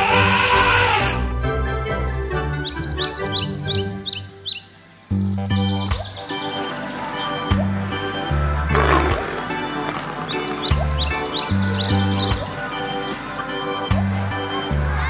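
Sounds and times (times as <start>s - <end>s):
birds chirping: 0.0s - 6.7s, 8.7s - 13.3s
background music: 0.0s - 15.0s
deep bass notes: 7.5s - 12.5s.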